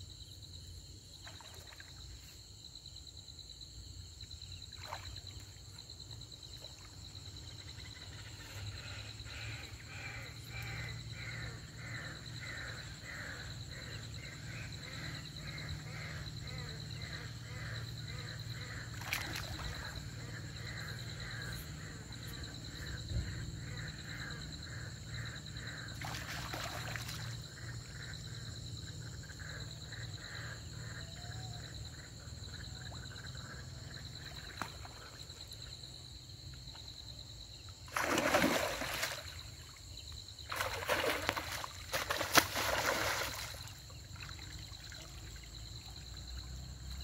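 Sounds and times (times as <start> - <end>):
high-pitched insect chorus: 0.0 - 47.0
water splashing around wading person: 18.9 - 20.0, 37.9 - 39.8, 40.4 - 45.9.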